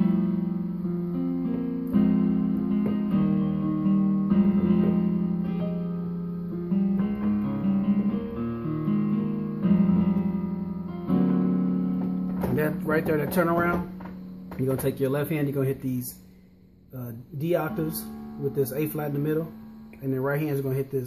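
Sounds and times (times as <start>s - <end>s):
digital piano chords: 0.0s - 21.0s.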